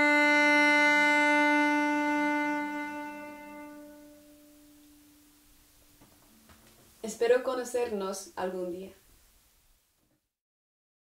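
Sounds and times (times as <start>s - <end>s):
cello bowed note: 0.0s - 5.6s.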